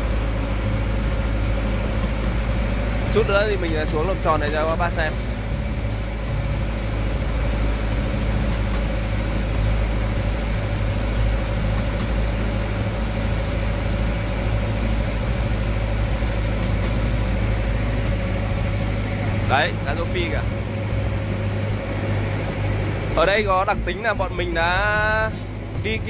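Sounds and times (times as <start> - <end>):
small engine running: 0.0 - 26.0.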